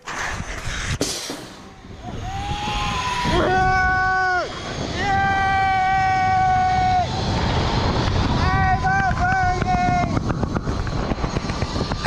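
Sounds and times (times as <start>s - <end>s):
wind rushing over microphone: 0.0s - 12.0s
zip-line trolley clack: 9.0s - 12.0s.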